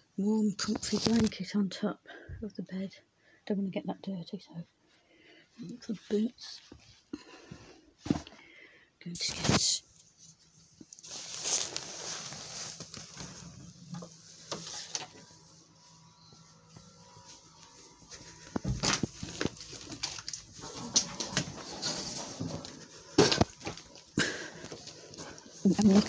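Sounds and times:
rustling of handled objects: 9.4s - 26.0s.

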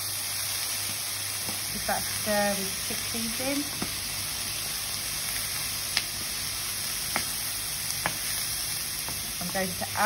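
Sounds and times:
vegetables sizzling in a frying pan: 0.0s - 10.0s.

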